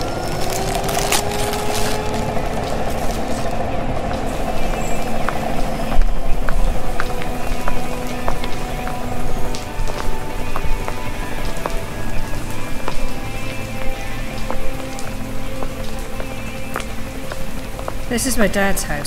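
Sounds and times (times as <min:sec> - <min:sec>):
rain hissing: 0:00.0 - 0:19.0.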